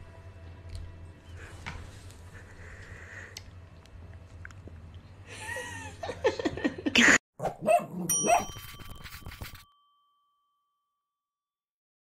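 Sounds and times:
dog-like yelps: 7.4s - 8.6s
bell ding: 8.1s - 11.2s.

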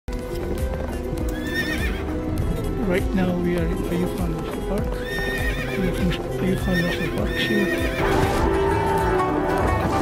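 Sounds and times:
horse hooves on paved road: 0.1s - 8.1s
background music: 0.1s - 10.0s.

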